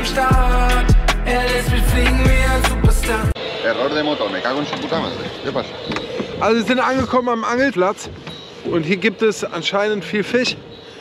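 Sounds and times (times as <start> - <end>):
people talking indistinctly: 0.0 - 10.7.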